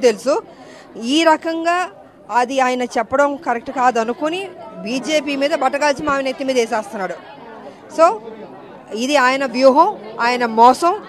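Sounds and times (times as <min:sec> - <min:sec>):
woman talking into a microphone: 0:00.0 - 0:07.2, 0:07.9 - 0:08.2, 0:08.9 - 0:11.0.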